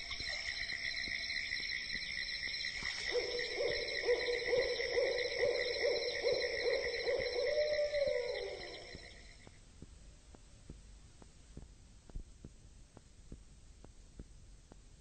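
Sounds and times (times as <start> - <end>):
insects trilling: 0.0 - 9.5
low pulsing hooting call: 0.0 - 9.5.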